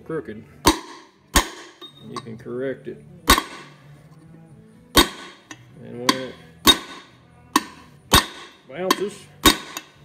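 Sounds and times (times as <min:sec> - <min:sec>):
hammer striking metal rod: 0:00.6 - 0:02.4, 0:03.3 - 0:03.8, 0:04.9 - 0:10.0.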